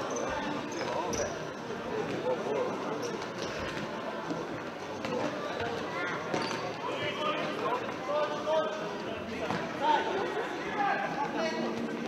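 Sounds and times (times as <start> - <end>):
echoing shouts and chatter: 0.0 - 12.0
shoe squeaks: 0.1 - 1.4.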